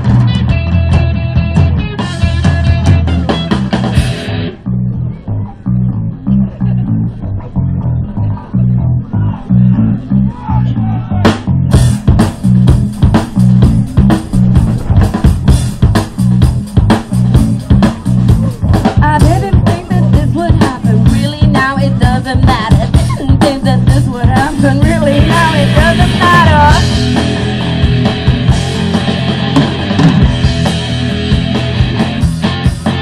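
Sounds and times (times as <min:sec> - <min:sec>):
electric guitar: 0:00.0 - 0:10.4, 0:11.0 - 0:33.0
bass guitar line: 0:00.0 - 0:33.0
drum kit and cymbals: 0:11.3 - 0:33.0.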